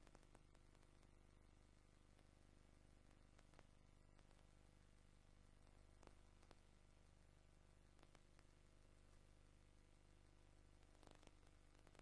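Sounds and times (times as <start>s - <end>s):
faint hum and hiss: 0.0s - 12.0s.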